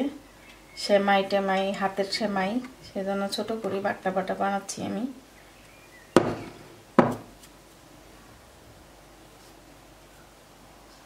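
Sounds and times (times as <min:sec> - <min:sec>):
dishes knocking on stone countertop: 0:06.2 - 0:07.3.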